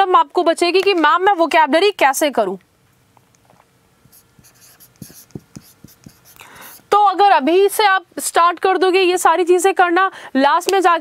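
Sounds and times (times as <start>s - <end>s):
speech: 0.0s - 2.6s, 6.9s - 11.0s
marker pen writing on whiteboard: 4.0s - 6.4s.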